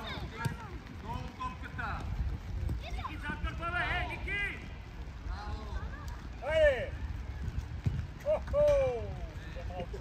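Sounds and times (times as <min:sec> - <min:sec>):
voices calling and shouting: 0:00.0 - 0:10.0.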